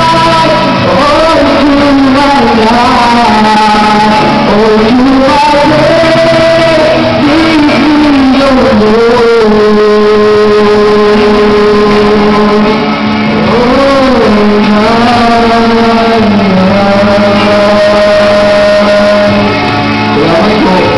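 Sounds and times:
backing music: 0:00.0 - 0:20.9
man singing into a microphone: 0:00.0 - 0:20.9.

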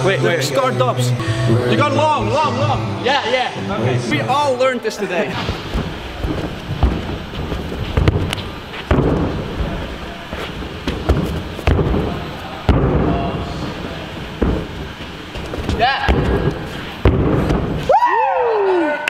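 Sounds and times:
heavy thuds on gymnastics floor: 0:05.4 - 0:17.9.

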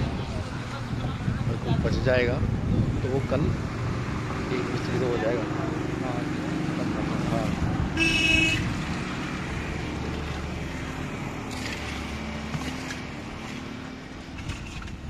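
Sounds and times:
engine and traffic rumble: 0:00.0 - 0:15.0
faint horn-like tone: 0:08.0 - 0:08.7
vehicle horn toot: 0:08.0 - 0:08.7.

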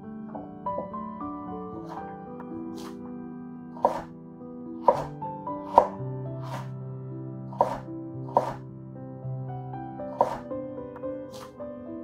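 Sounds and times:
knife chopping on wooden board: 0:02.8 - 0:03.0, 0:03.8 - 0:04.1, 0:04.8 - 0:05.1, 0:05.7 - 0:06.7, 0:07.6 - 0:08.6, 0:10.2 - 0:10.4.

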